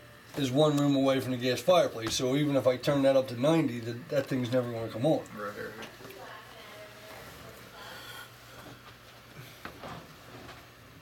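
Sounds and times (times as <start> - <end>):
circulator pump humming: 0.0 - 11.0.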